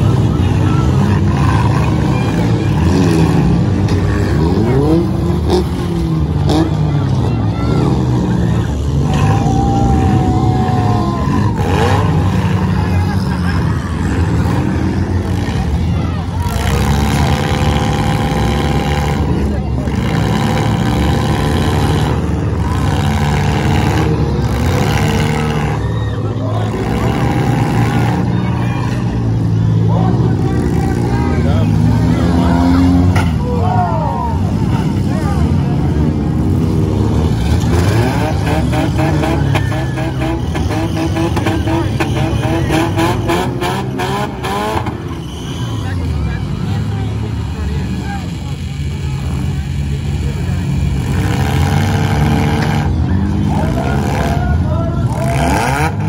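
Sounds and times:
car engines revving hard: 0:00.0 - 0:56.0
voices: 0:00.0 - 0:56.0.

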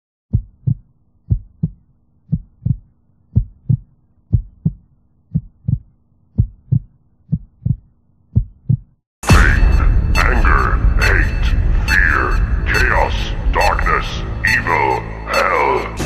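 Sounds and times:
heartbeat thumps: 0:00.3 - 0:09.5
faint steady hum: 0:00.4 - 0:08.9.

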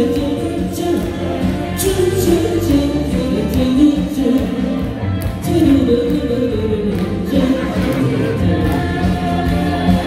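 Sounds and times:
backing track music: 0:00.0 - 0:10.0
woman singing into a microphone: 0:00.0 - 0:10.0.

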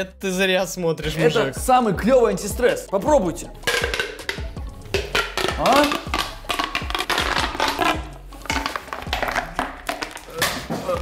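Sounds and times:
background music: 0:00.0 - 0:11.0
plastic fidget toy crackling: 0:05.0 - 0:10.4.

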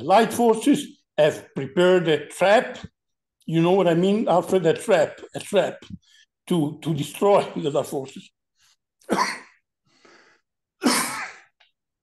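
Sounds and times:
man coughing: 0:09.0 - 0:09.6, 0:10.8 - 0:11.5
man breathing in: 0:09.8 - 0:10.5.

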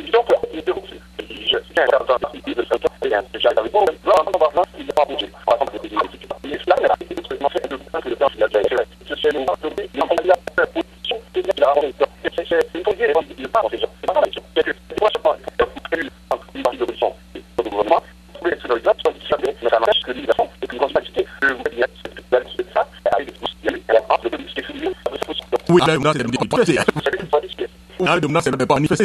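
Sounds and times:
person talking over telephone: 0:00.0 - 0:29.0
steady low hum: 0:00.0 - 0:29.0.

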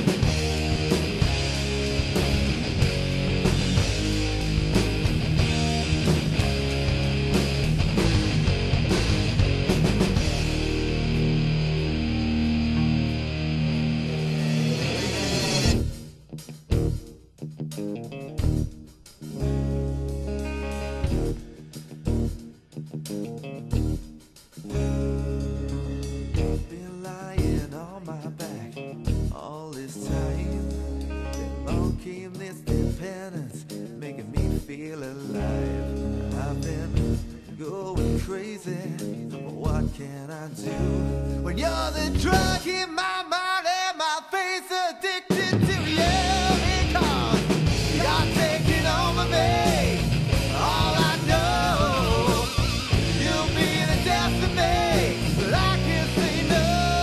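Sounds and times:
rock band playing: 0:00.0 - 0:29.4, 0:30.1 - 0:42.8, 0:45.3 - 0:57.0.

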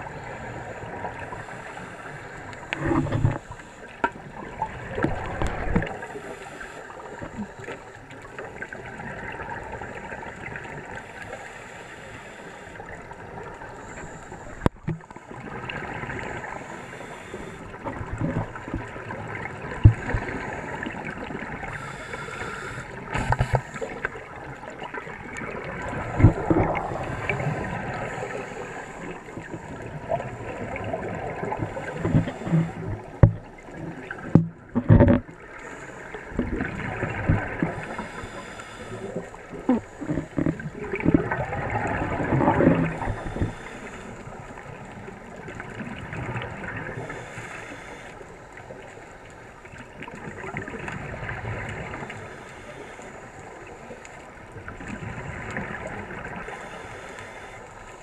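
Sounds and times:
underwater exhaled air bubbles: 0:00.0 - 0:11.6, 0:12.2 - 0:58.0
steady hiss: 0:21.5 - 0:24.2, 0:37.7 - 0:39.5, 0:42.9 - 0:44.9, 0:47.0 - 0:48.7, 0:56.4 - 0:58.0.

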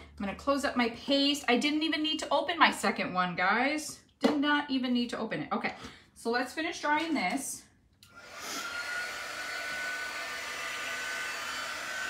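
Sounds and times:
heat tool blowing with whine: 0:08.1 - 0:12.0.

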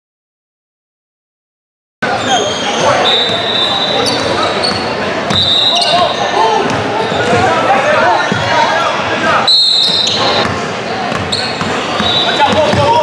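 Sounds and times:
spectators talking and calling out: 0:02.0 - 0:13.0
short high squeals: 0:02.1 - 0:06.4
basketball bouncing on wooden court: 0:04.1 - 0:05.5, 0:10.4 - 0:13.0.

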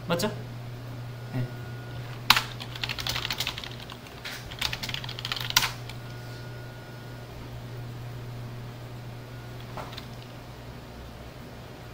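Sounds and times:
steady low hum: 0:00.0 - 0:11.9
computer keyboard typing: 0:02.3 - 0:06.0, 0:09.6 - 0:10.3.

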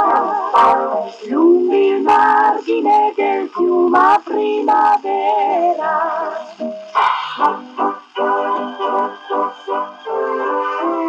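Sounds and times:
voices singing in close harmony: 0:00.0 - 0:11.0.

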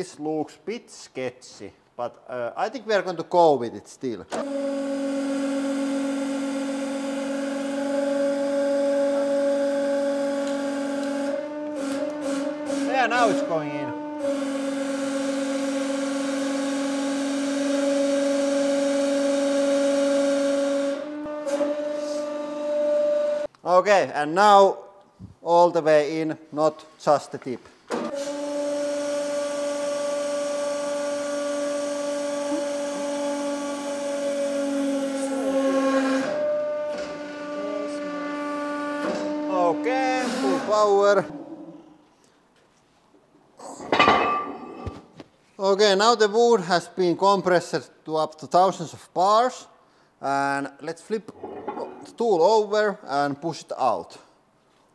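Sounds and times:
hydraulic pump whine: 0:04.3 - 0:23.5, 0:27.9 - 0:41.5
sharp metallic clank: 0:43.8 - 0:44.8.

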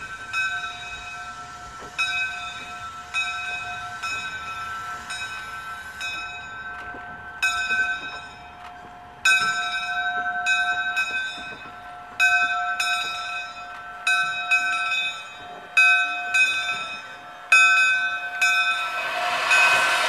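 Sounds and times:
steam locomotive bell ringing: 0:00.0 - 0:20.0.

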